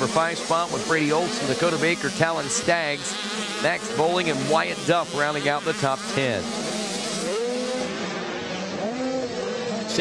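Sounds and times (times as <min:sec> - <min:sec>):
motocross bikes revving: 0:00.0 - 0:10.0.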